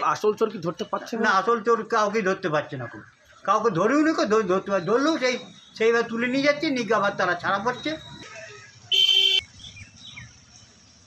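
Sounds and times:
vehicle horn honking: 8.9s - 9.5s.

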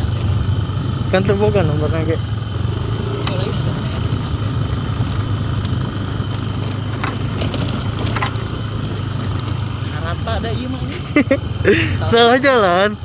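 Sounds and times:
motorcycle engine running: 0.0s - 13.0s
road and wind noise: 0.0s - 13.0s.

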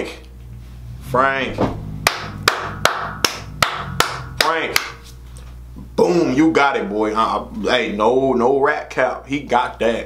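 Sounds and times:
hand claps in steady beat: 2.0s - 5.0s.

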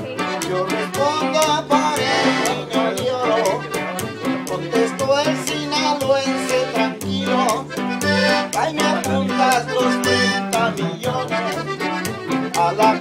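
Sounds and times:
accordion melody: 0.0s - 13.0s
twelve-string guitar: 0.0s - 13.0s
upright bass line: 0.0s - 13.0s.

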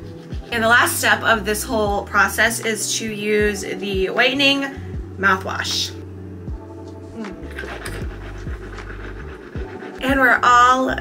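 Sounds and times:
background music with soft beat: 0.0s - 11.0s
mouthwash sloshing in mouth: 6.9s - 10.6s
breathing through nose: 7.1s - 10.0s.

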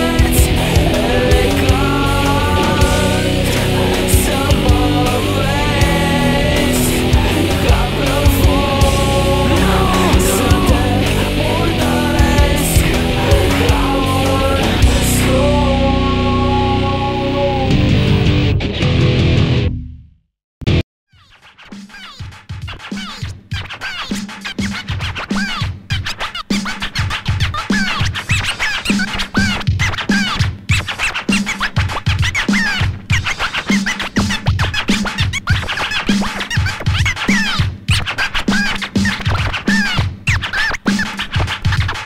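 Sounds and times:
turntable scratching: 0.0s - 15.4s, 21.2s - 42.0s
steady drum beat: 0.0s - 15.8s, 21.7s - 25.9s, 26.5s - 42.0s.

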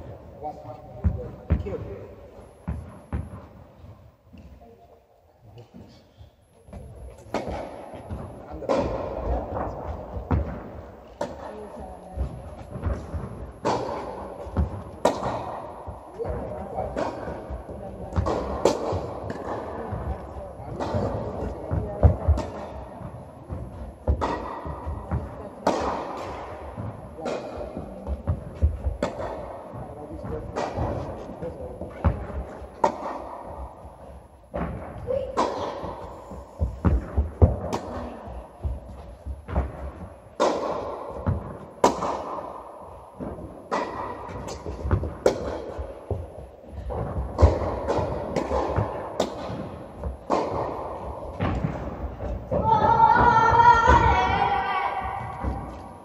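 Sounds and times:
tennis balls bouncing: 0.0s - 4.6s, 5.6s - 56.0s
tennis balls struck by rackets: 0.0s - 4.6s, 6.7s - 56.0s.

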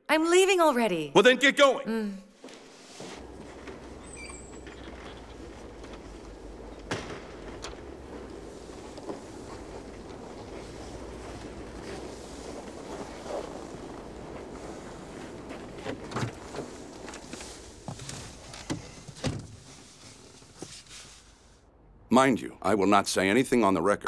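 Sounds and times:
footsteps: 2.3s - 21.5s
steady outdoor hum: 3.2s - 22.9s.

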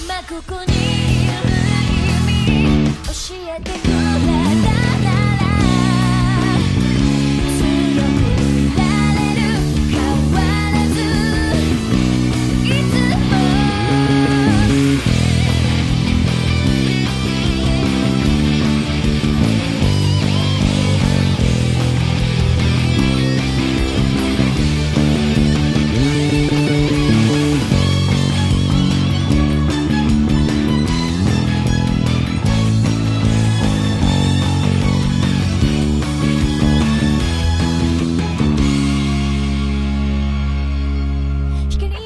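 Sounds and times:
person singing: 0.0s - 6.8s, 7.4s - 15.9s
rock song recording: 0.0s - 42.0s
electric bass: 0.7s - 3.1s, 3.8s - 42.0s.

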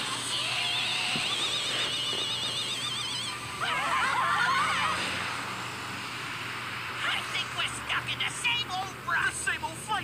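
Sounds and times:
people screaming: 2.7s - 5.5s.

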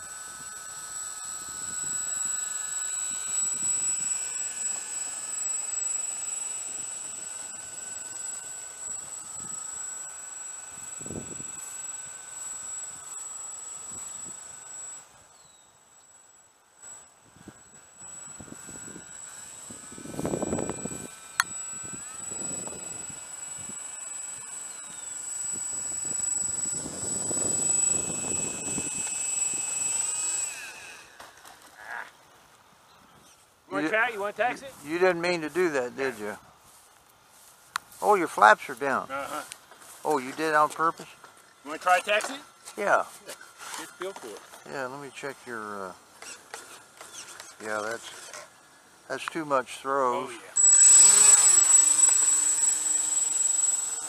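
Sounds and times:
electric motors whining: 0.0s - 54.0s.

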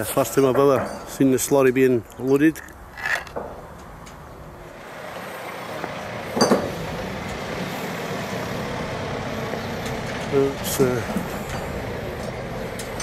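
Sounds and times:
forklift engine running: 4.4s - 13.0s.

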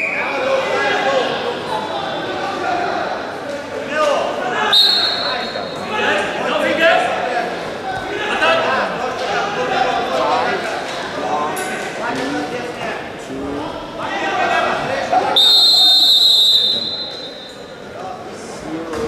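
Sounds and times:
referee's whistle blast: 4.8s - 5.8s, 15.4s - 17.6s.

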